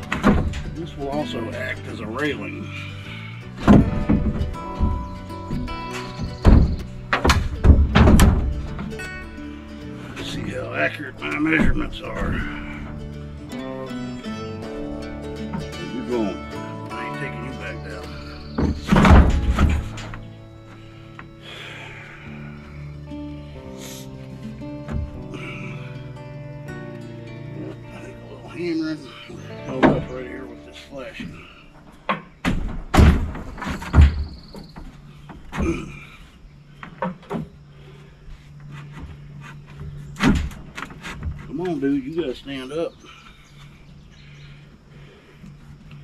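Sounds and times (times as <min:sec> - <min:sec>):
heavy wooden thunks: 0:00.0 - 0:22.8, 0:24.4 - 0:25.9, 0:29.1 - 0:44.4
background music: 0:00.0 - 0:32.1.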